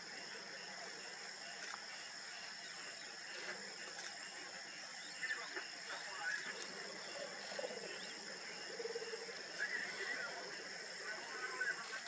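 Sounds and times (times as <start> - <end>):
grassland insects calling: 0.0 - 12.0
faint bird chirps: 0.2 - 12.0.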